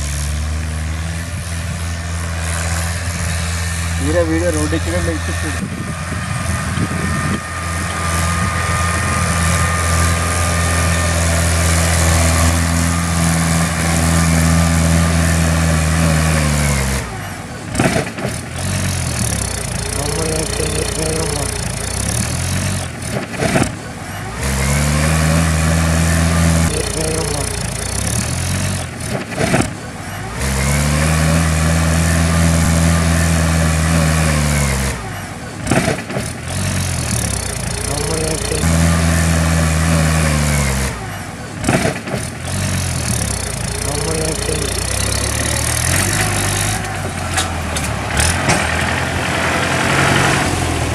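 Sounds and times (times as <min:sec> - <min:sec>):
diesel tractor engine under load: 0:00.0 - 0:50.9.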